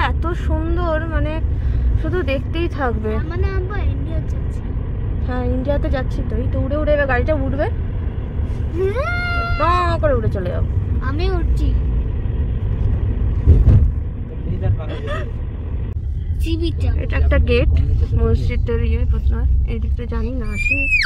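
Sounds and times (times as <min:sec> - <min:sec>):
car engine and road noise: 0:00.0 - 0:21.0
sharp thump: 0:13.4 - 0:14.0.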